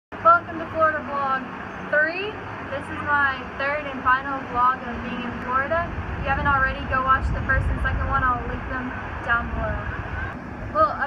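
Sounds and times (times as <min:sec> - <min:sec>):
woman speaking: 0:00.2 - 0:09.9, 0:10.8 - 0:11.0.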